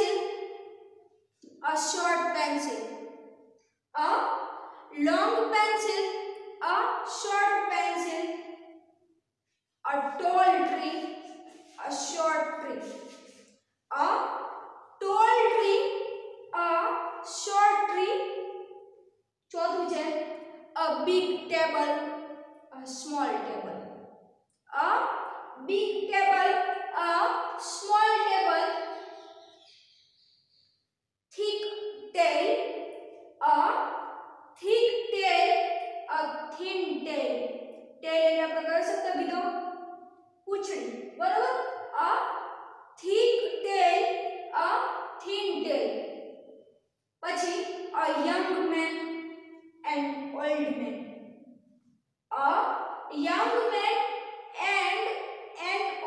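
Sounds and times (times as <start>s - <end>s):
woman speaking: 0.0s - 0.2s, 1.6s - 2.8s, 4.0s - 4.3s, 4.9s - 6.0s, 6.6s - 8.3s, 9.9s - 11.1s, 11.8s - 13.1s, 13.9s - 14.3s, 15.0s - 15.9s, 16.6s - 18.2s, 19.6s - 20.2s, 20.8s - 22.0s, 22.8s - 23.8s, 24.8s - 28.8s, 31.4s - 32.6s, 33.4s - 33.8s, 34.6s - 35.5s, 36.1s - 37.4s, 38.0s - 39.5s, 40.5s - 42.3s, 43.0s - 45.9s, 47.2s - 49.2s, 49.9s - 51.0s, 52.3s - 54.0s, 54.6s - 56.0s
person speaking: 9.9s - 11.1s, 11.7s - 13.1s.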